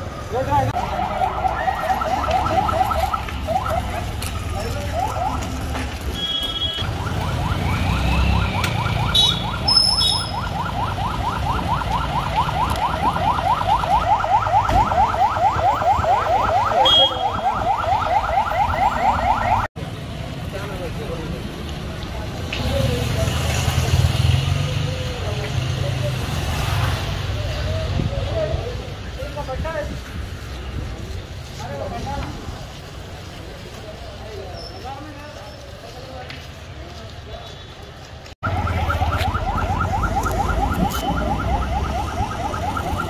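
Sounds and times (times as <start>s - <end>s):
street noise: 0.0s - 43.0s.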